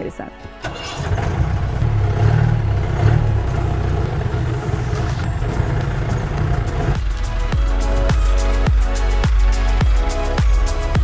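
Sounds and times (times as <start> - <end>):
jeep engine rumbling: 0.6 - 11.0.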